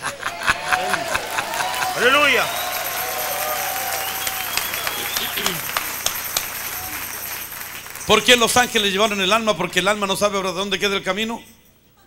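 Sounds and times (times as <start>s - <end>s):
voices calling out: 0.0s - 7.2s
audience applauding: 0.0s - 9.2s.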